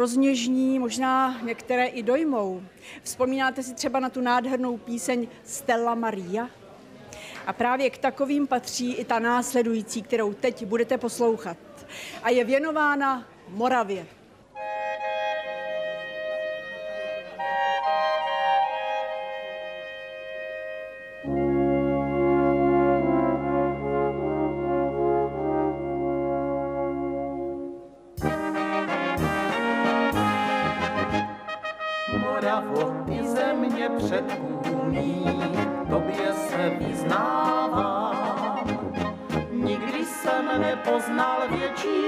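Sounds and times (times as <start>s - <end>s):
brass band playing: 14.6s - 42.0s
soft clarinet melody: 14.6s - 42.0s
deep tuba bass: 21.2s - 42.0s.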